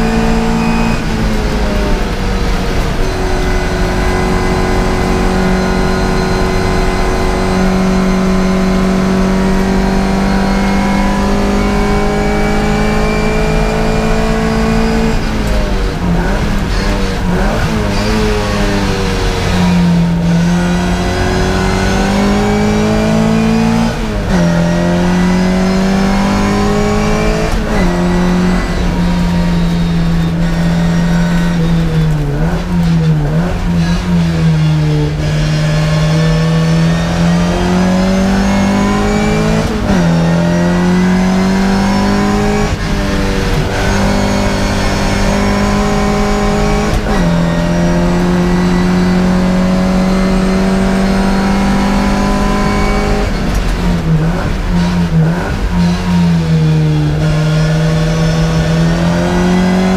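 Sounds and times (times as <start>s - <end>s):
race car engine accelerating: 0.0s - 59.9s.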